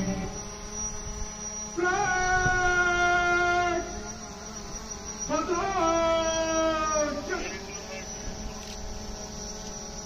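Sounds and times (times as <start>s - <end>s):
electrical hum from loudspeakers: 0.0s - 10.0s.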